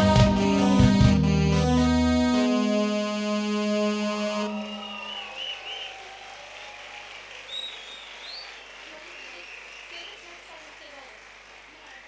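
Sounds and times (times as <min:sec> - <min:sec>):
keyboard chord held: 0:00.0 - 0:04.8
crowd cheering: 0:04.2 - 0:12.0
wavering whistles: 0:04.4 - 0:06.1, 0:07.5 - 0:10.2.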